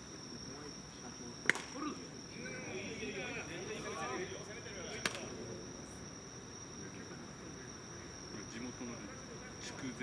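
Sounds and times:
insects trilling: 0.0 - 10.0.

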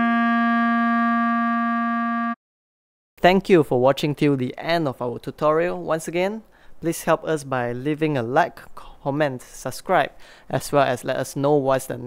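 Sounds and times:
clarinet holding long note: 0.0 - 2.4.

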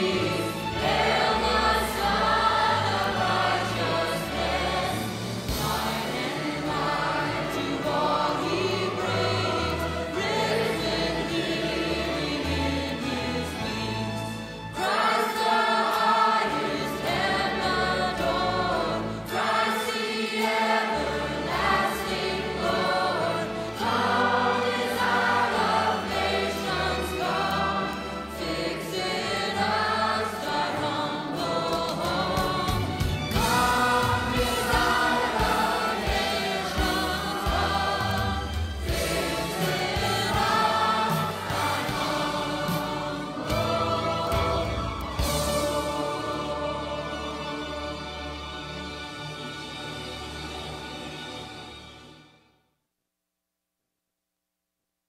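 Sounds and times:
choir singing with music: 0.0 - 52.6.

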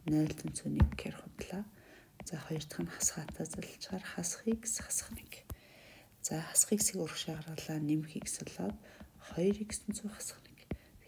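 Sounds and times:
person talking: 0.0 - 5.5, 6.2 - 10.6.

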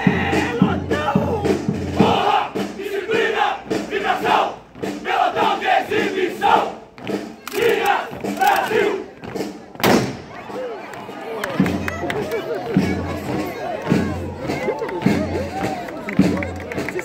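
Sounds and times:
soldiers shouting marching chant: 0.0 - 9.1.

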